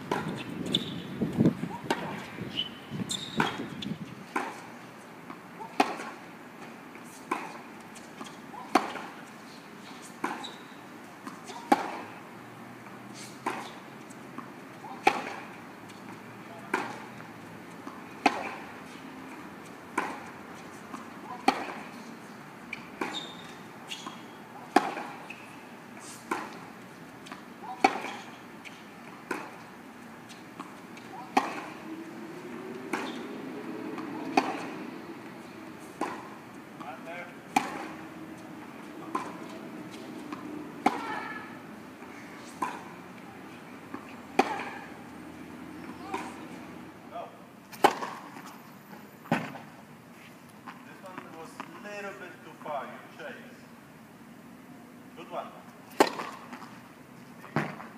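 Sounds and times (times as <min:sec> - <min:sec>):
tennis balls struck by rackets: 0:00.0 - 0:02.4, 0:03.2 - 0:09.3, 0:10.2 - 0:12.2, 0:12.9 - 0:22.0, 0:22.6 - 0:46.9, 0:47.7 - 0:48.5, 0:49.3 - 0:49.7, 0:55.9 - 0:56.8, 0:57.4 - 0:57.9.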